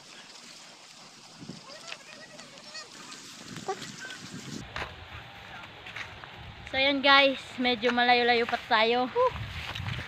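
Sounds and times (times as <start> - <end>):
faint outdoor background: 0.0 - 10.0.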